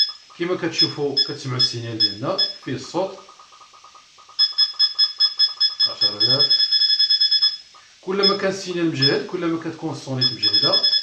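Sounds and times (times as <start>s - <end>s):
rapid short high beeps: 0.0s - 9.2s, 10.2s - 11.0s.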